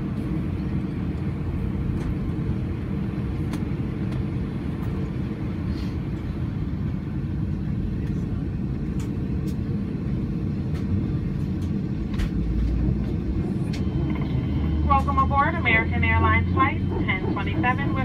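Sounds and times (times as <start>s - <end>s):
aircraft cabin engine rumble: 0.0s - 18.0s.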